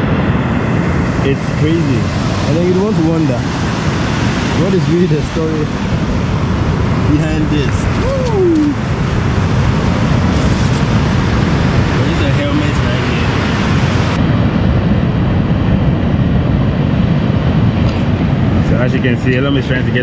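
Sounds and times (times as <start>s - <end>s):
surf breaking on beach: 0.0s - 20.0s
wind rumbling on microphone: 0.0s - 20.0s.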